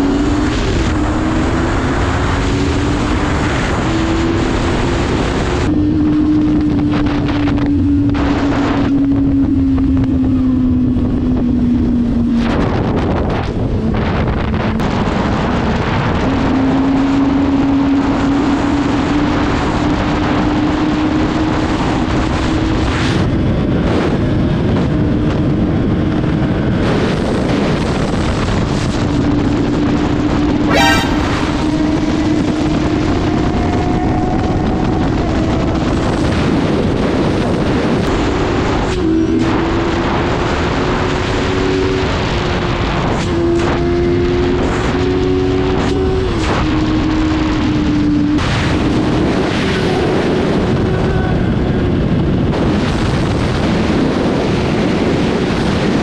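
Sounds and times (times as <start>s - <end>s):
wind on microphone: 0.0s - 56.0s.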